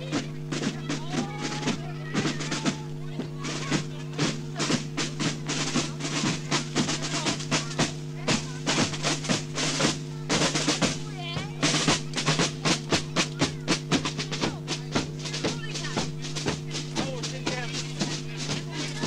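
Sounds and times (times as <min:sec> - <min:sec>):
constant low hum: 0:00.0 - 0:19.0
snare and bass drums: 0:00.0 - 0:19.0.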